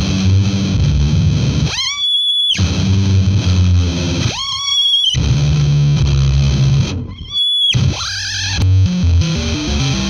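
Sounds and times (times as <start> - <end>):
distorted electric bass: 0.0 - 1.7, 2.6 - 4.4, 5.2 - 7.2, 7.8 - 10.0.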